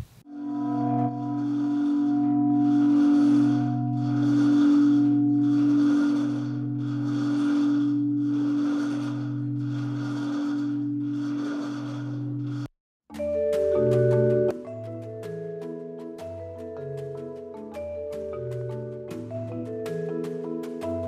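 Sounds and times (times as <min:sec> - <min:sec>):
low humming bell ring: 0:00.3 - 0:12.7.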